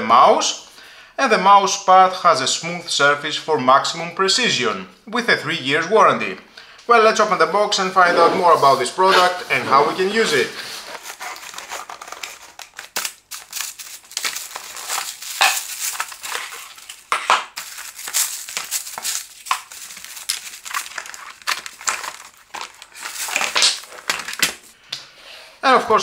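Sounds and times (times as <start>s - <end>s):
packing wrap and cardboard rustling: 8.1s - 24.8s.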